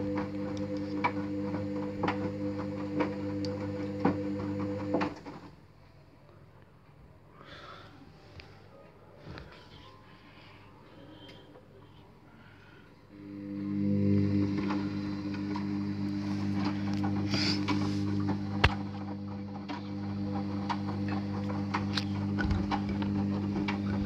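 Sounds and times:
washing machine motor hum: 0:00.0 - 0:05.6, 0:13.1 - 0:24.0.

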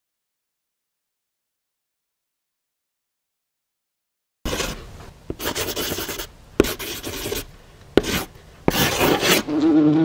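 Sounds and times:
pen scratching on paper: 0:04.5 - 0:09.6.

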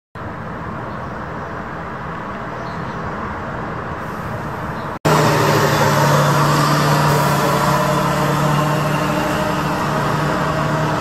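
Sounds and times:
road vehicles passing: 0:00.2 - 0:11.0.

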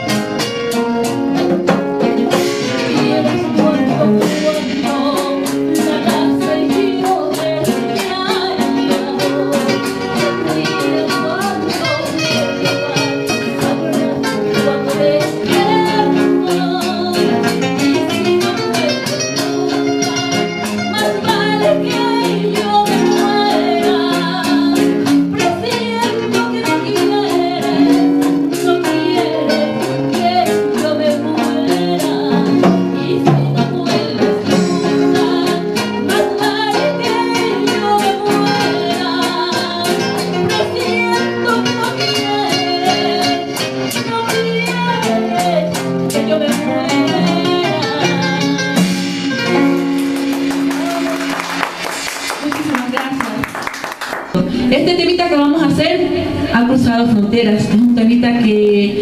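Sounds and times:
acoustic guitars: 0:00.0 - 0:59.0
congas: 0:00.0 - 0:59.0
woman singing: 0:00.7 - 0:48.8, 0:54.4 - 0:59.0.

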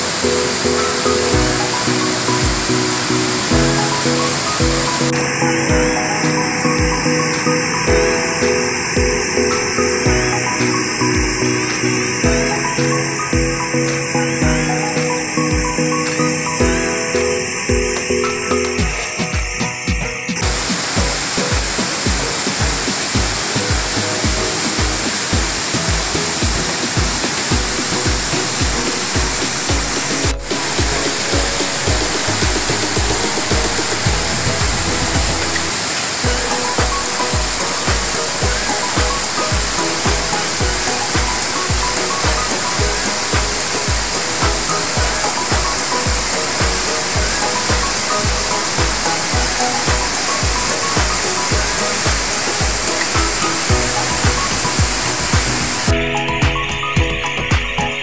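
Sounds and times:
waterfall rushing: 0:00.0 - 0:58.0
music with bass beat: 0:00.1 - 0:58.0.

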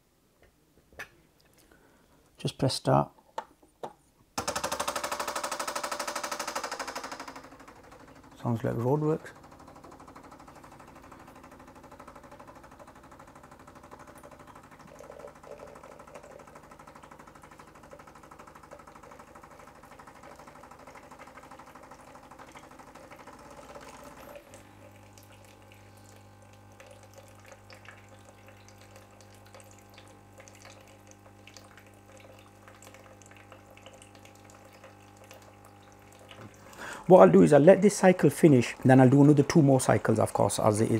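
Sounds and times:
coffee machine buzzing: 0:04.4 - 0:40.9
hot water streaming into jug: 0:07.7 - 0:40.9.

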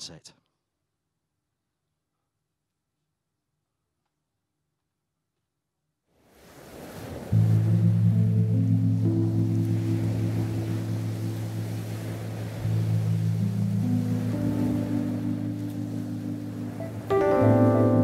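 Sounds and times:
ocean surf: 0:06.2 - 0:18.0
keyboard pad chords: 0:07.3 - 0:18.0.

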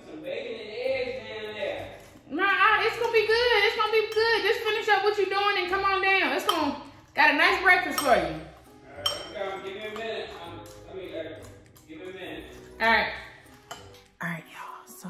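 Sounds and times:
spoon clinking ceramic bowl: 0:02.9 - 0:14.2
woman's wordless voice: 0:14.2 - 0:15.0.

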